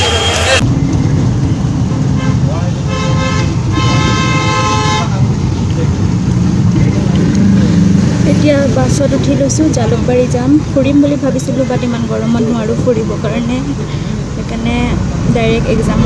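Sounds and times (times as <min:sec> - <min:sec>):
vehicle horn honking: 0:00.0 - 0:00.6, 0:02.1 - 0:05.3
engine and road rumble: 0:00.0 - 0:16.0.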